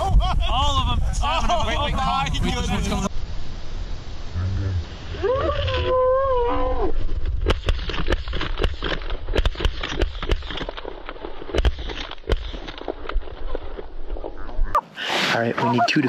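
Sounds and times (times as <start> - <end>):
wind rumbling on microphone: 0.0 - 10.4.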